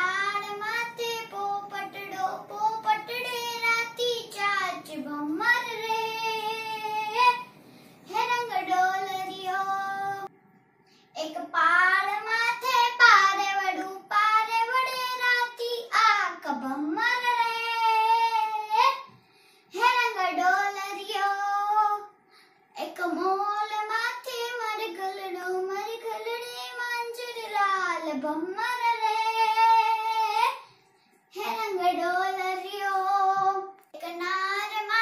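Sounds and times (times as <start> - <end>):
girl singing unaccompanied: 0.0 - 10.3, 11.1 - 19.1, 19.7 - 35.0.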